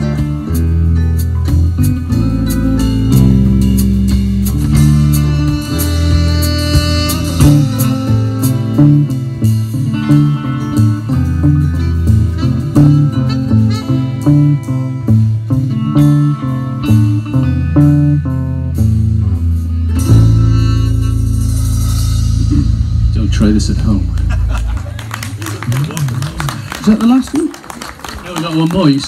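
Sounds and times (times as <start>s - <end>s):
live blues band playing: 0.0s - 28.2s.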